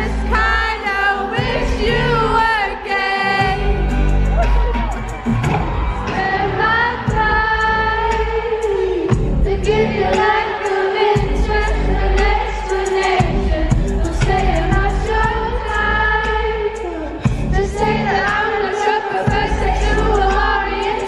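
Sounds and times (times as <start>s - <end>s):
deep bass line and beat: 3.4s - 10.4s, 11.2s - 18.6s, 19.3s - 21.0s.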